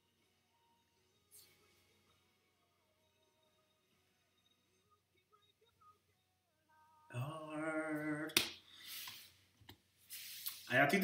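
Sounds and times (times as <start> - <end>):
faint music tones: 0.0 - 11.0
man singing held note: 7.0 - 8.4.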